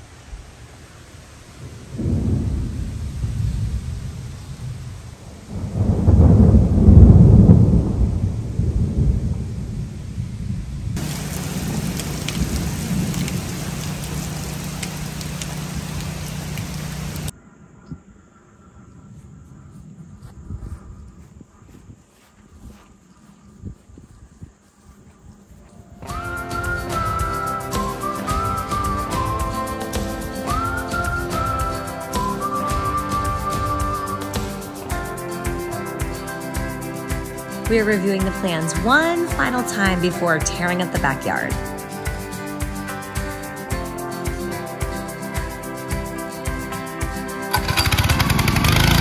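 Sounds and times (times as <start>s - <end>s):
steady rain: 0.0s - 17.3s, 26.0s - 49.0s
thunder rolling: 0.3s - 17.4s, 26.0s - 35.4s, 47.5s - 49.0s.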